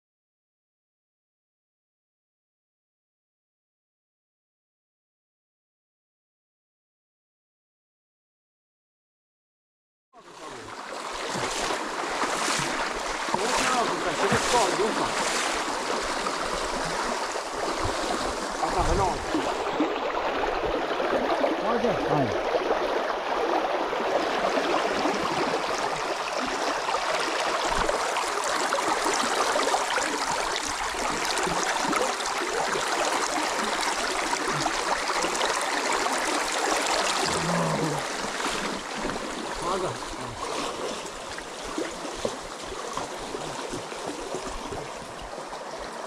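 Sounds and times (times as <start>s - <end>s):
river water rushing over stones: 10.2s - 46.0s
splashing from wading legs: 10.4s - 21.6s, 22.5s - 46.0s.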